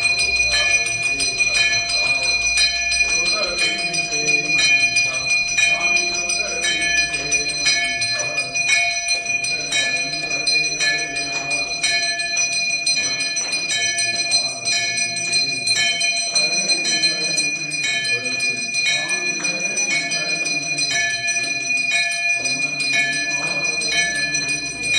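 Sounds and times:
brass bell ringing: 0.0s - 24.9s
voices singing: 0.0s - 24.9s.

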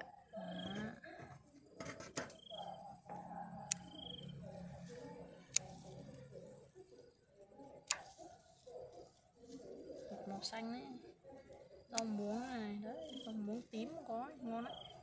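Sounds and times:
scissors snipping stems: 5.4s - 6.2s, 7.8s - 8.2s, 11.9s - 12.3s.

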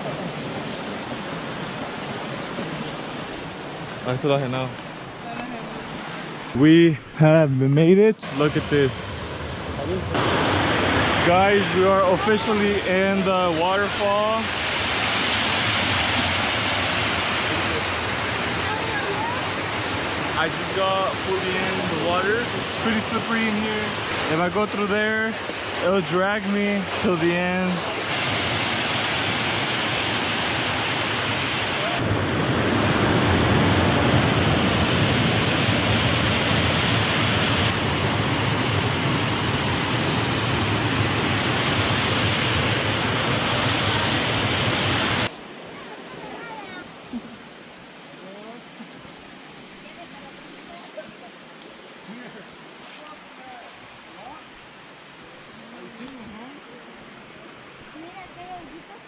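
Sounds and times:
softer flowing water: 0.0s - 59.0s
water rushing over weir: 8.2s - 59.0s.

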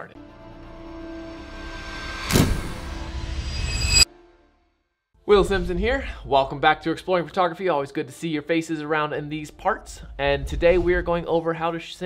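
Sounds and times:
rising swell: 0.4s - 4.1s
sharp hit: 1.1s - 4.1s
whoosh: 1.3s - 4.1s.

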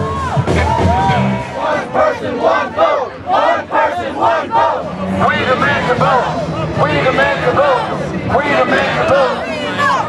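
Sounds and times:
crowd of protesters shouting: 0.0s - 10.0s.

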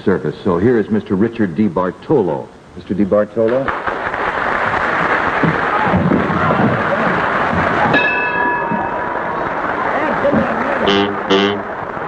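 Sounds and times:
studio audience applause: 4.0s - 8.0s, 8.7s - 12.0s
held high musical note: 10.9s - 11.7s.

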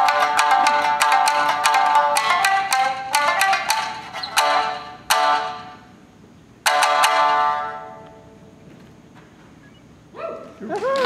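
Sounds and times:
shamisen struck notes: 0.0s - 6.0s, 6.6s - 8.6s.

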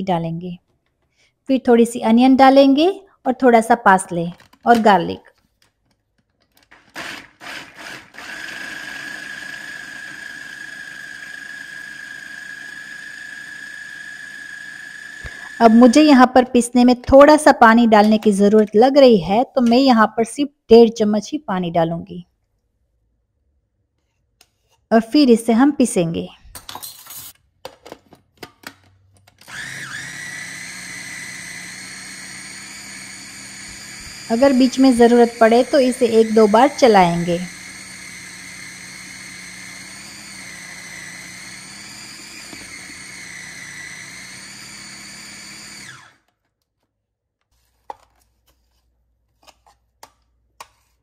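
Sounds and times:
food processor whining: 6.6s - 16.3s, 29.4s - 46.3s.

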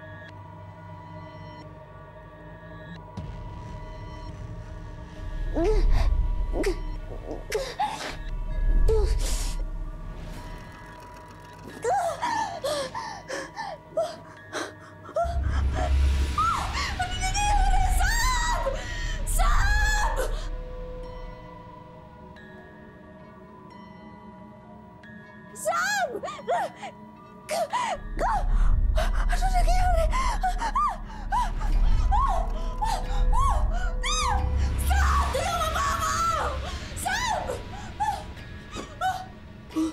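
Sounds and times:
low rumbling dramatic score: 0.0s - 22.6s, 28.0s - 39.9s
faint steady music tone: 0.0s - 39.9s
woman whimpering moans: 5.5s - 9.6s, 27.6s - 39.9s.

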